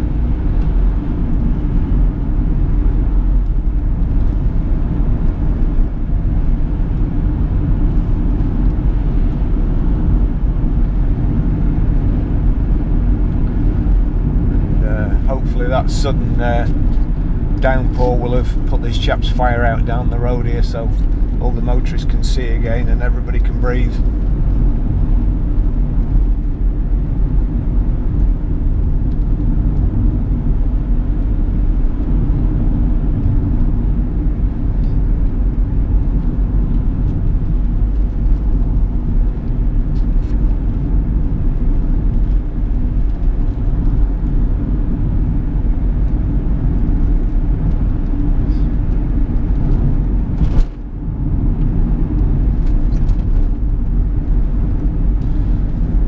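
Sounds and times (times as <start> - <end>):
car engine drone: 0.0 - 56.0.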